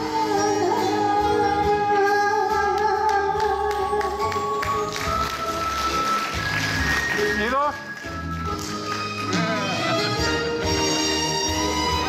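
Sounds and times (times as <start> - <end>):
woman singing with vibrato: 0.0 - 5.3
karaoke backing track: 0.0 - 7.3.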